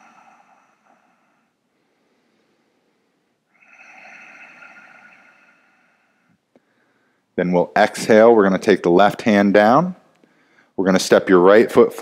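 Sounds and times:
slow breathing through throat: 0:00.0 - 0:07.4, 0:10.2 - 0:10.8.

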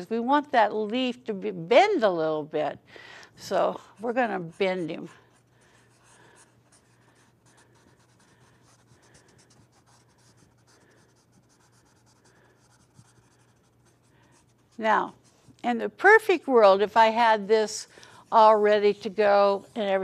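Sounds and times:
low electrical hum: 0:00.0 - 0:20.0
pencil shading on paper: 0:04.0 - 0:15.6.

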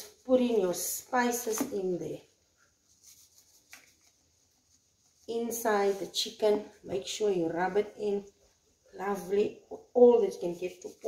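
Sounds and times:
hands rustling: 0:02.8 - 0:06.2.

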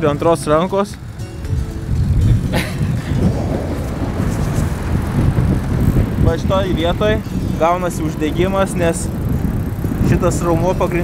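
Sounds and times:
bike tyre road noise: 0:00.0 - 0:11.0
wind rumbling on microphone: 0:00.0 - 0:11.0.

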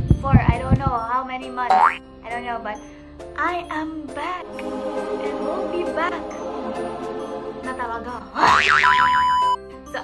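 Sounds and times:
background music: 0:00.2 - 0:10.0.

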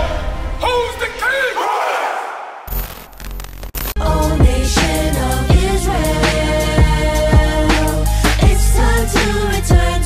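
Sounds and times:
crowd of men shouting: 0:01.4 - 0:02.6
low bass: 0:03.4 - 0:10.0.

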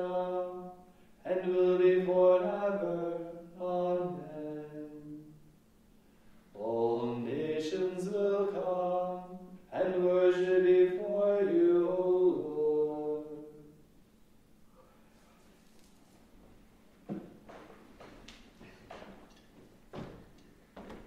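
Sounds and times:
chant sung in unison: 0:00.0 - 0:05.4, 0:06.5 - 0:13.8.

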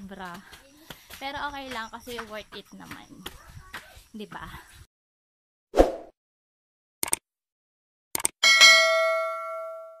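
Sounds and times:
bell ding: 0:08.4 - 0:10.0.

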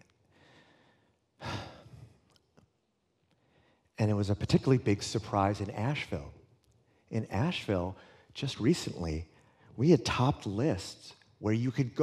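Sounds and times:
man sighing: 0:01.4 - 0:02.1.

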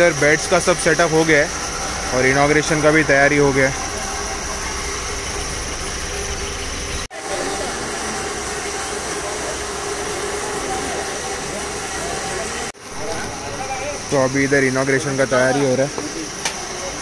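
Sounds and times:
faint voices: 0:07.1 - 0:17.0.

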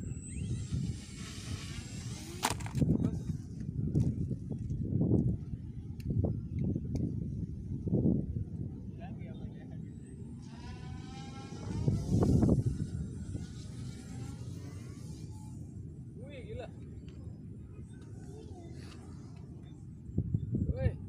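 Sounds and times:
wind buffeting microphone: 0:00.0 - 0:09.7, 0:10.3 - 0:15.7, 0:17.6 - 0:21.0
electric motor and propeller whining: 0:00.0 - 0:20.7.

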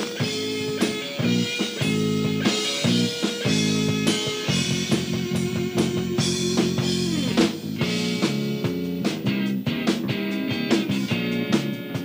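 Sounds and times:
drum kit steady beat: 0:00.0 - 0:12.0
electric guitar chords: 0:00.0 - 0:12.0.

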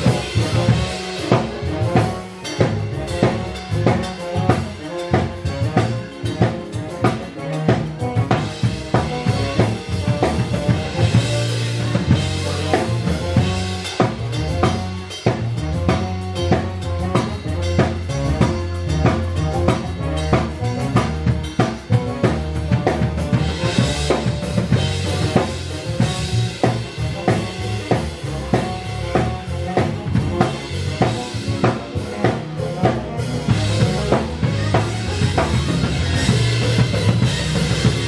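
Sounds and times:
drum kit playing steady beat: 0:00.0 - 0:38.0
sustained low bass line: 0:00.0 - 0:38.0.

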